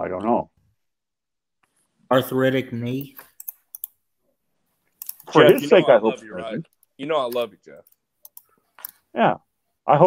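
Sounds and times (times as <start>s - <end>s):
computer keys clicking: 3.0s - 4.0s, 5.0s - 5.6s, 6.8s - 9.0s.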